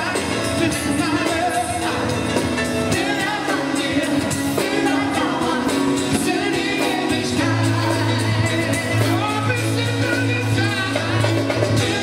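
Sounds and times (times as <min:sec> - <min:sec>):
live pop band: 0:00.0 - 0:12.0
person singing: 0:00.0 - 0:12.0.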